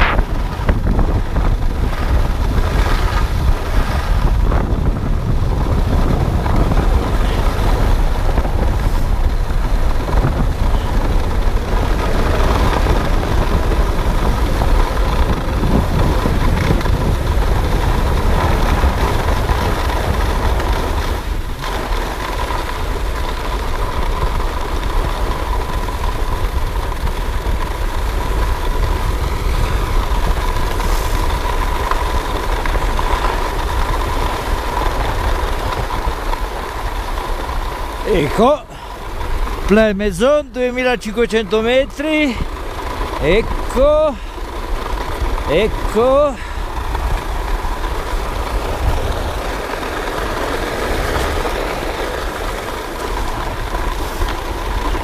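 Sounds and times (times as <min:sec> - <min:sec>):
heavy low rumble: 0:00.0 - 0:55.0
skis scraping on snow: 0:00.0 - 0:55.0
wind on microphone: 0:00.0 - 0:55.0.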